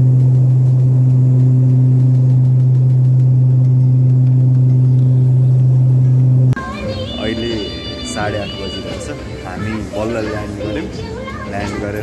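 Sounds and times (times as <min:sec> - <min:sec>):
airliner cabin hum: 0:00.0 - 0:12.0.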